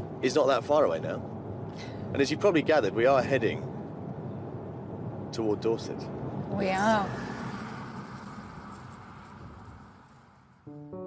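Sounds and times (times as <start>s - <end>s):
car engine and tyre noise: 0.0s - 10.7s.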